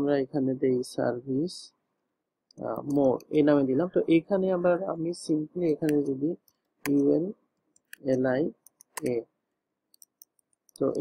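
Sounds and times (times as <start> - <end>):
person speaking: 2.5 - 9.4, 10.0 - 11.0.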